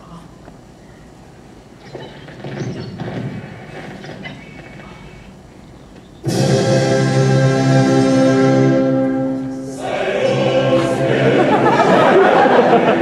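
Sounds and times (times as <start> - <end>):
choir holding sustained chords: 6.2 - 13.0.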